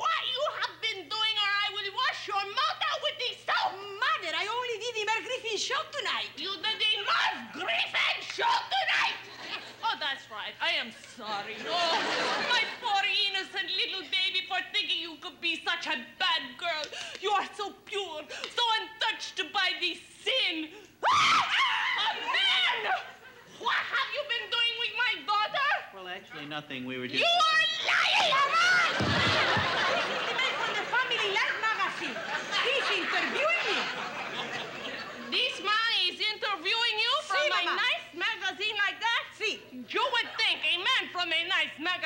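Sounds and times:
woman speaking excitedly: 0.0s - 26.1s, 27.1s - 29.0s, 29.7s - 33.9s, 35.2s - 42.0s
woman shrieking: 21.0s - 24.1s.

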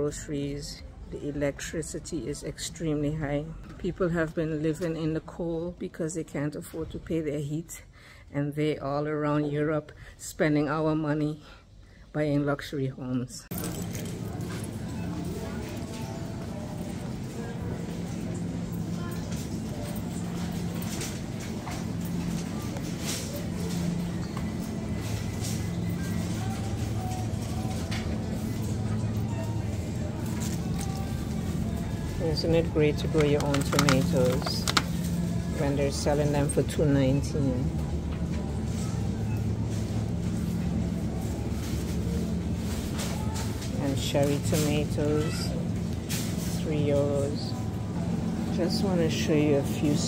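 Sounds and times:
indistinct shoppers' voices: 0.0s - 50.0s
steady low hum: 13.4s - 50.0s.

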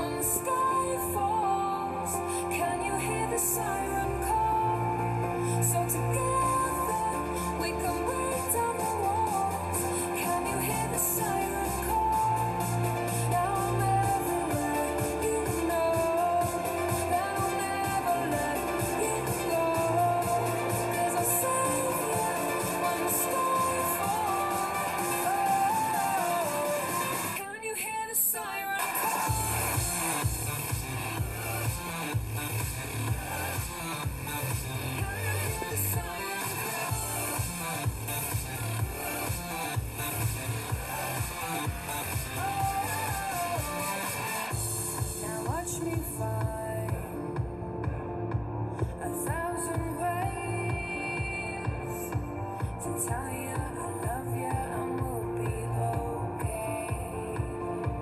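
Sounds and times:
pop song with sung melody: 0.0s - 58.0s.

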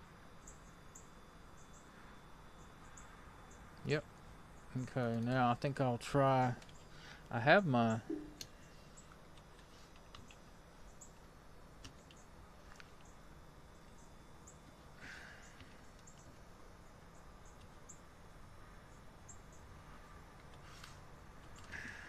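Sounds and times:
low room hum: 0.0s - 22.0s
computer keyboard clicks: 9.3s - 10.4s, 11.8s - 12.2s, 21.4s - 21.8s.

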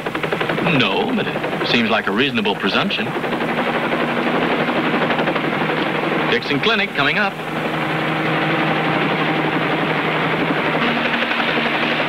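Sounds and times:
helicopter rotor chop: 0.0s - 12.0s.

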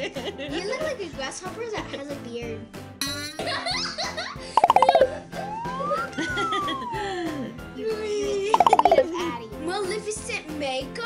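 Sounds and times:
whistle-like tone sliding in pitch: 4.7s - 7.0s.

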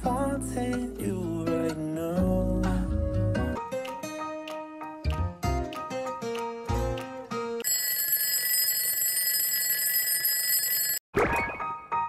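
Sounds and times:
alarm ringing: 7.6s - 11.0s.

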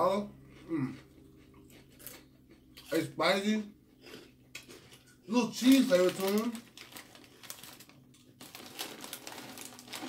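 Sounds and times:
chip bag crinkling: 4.6s - 10.0s
snacks rustling in bag: 4.6s - 10.0s.

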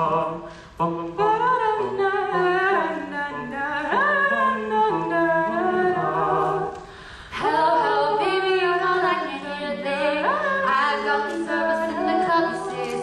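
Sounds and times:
vocal trio singing harmonies: 0.0s - 13.0s.

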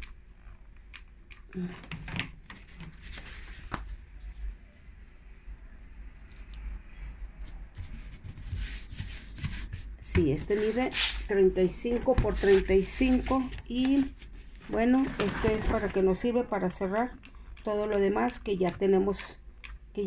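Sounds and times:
paper rustling: 2.4s - 4.4s, 7.8s - 11.3s, 11.9s - 16.3s
small clicks and taps: 19.6s - 20.0s.

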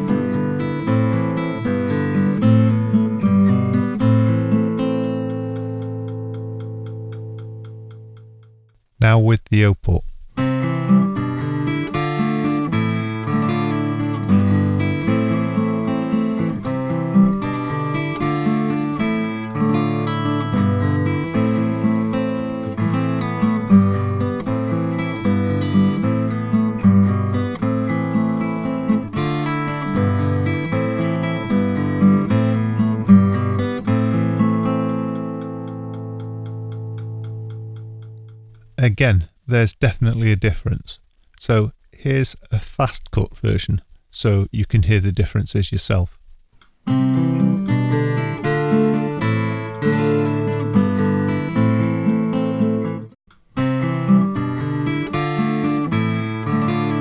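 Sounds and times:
acoustic guitar chord ringing: 0.0s - 8.4s, 10.1s - 38.5s, 46.9s - 57.0s
fingerpicked guitar tune: 0.0s - 8.7s, 10.1s - 42.2s, 46.5s - 57.0s.

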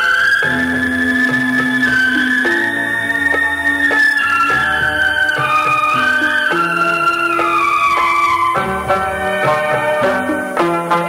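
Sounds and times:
instrumental devotional music: 0.0s - 11.0s.

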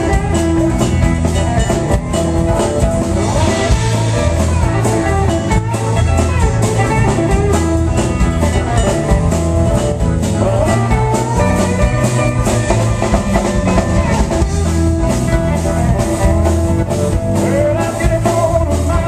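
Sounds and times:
drum kit beat: 0.0s - 19.0s
electric guitar: 0.0s - 19.0s.

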